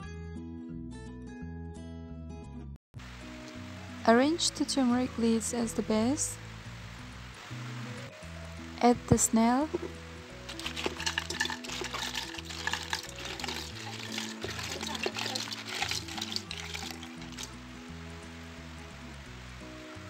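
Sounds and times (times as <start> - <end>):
background music: 0.0 - 20.0
snails clattering into a pot: 10.5 - 17.6.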